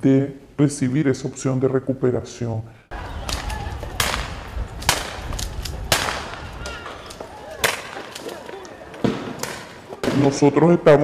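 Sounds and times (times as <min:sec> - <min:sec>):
faint cracks: 0:03.2 - 0:10.2.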